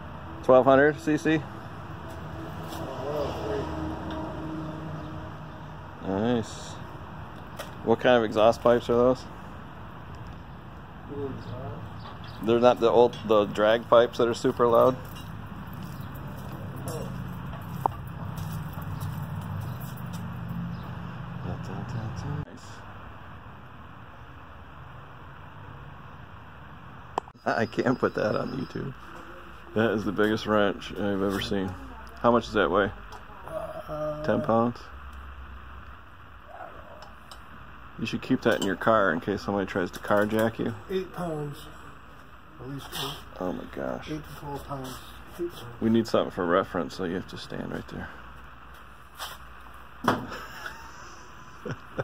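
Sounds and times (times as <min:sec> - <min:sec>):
highway traffic hum: 0:00.0 - 0:52.0
faint voice: 0:33.3 - 0:34.6.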